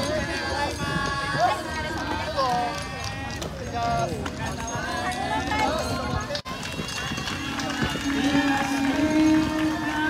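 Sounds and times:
patter of runners' footsteps: 0.0 - 10.0
people cheering: 6.5 - 10.0.

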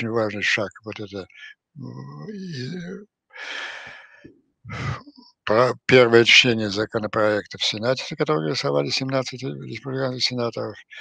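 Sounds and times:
man speaking: 0.0 - 11.0
man taking deep breath: 3.4 - 4.9.

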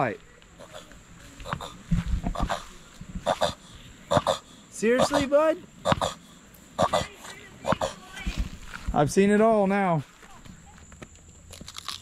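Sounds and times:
tortoise grunts: 0.6 - 8.2.

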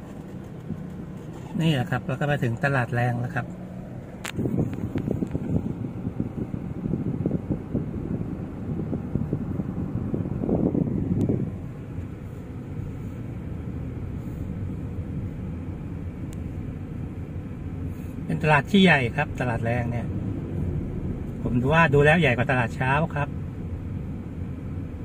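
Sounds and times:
car engine and tyres rumbling: 0.0 - 25.0.

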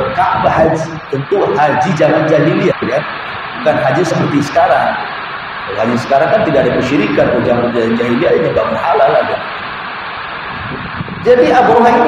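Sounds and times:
man speaking: 0.0 - 5.1, 5.7 - 9.5, 11.3 - 12.0
steady background hiss: 0.0 - 12.0.

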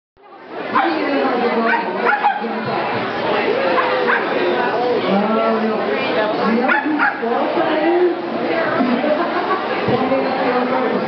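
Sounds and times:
crowd chatter: 0.2 - 11.0
dog barking short barks: 1.7 - 2.5, 6.7 - 7.2.

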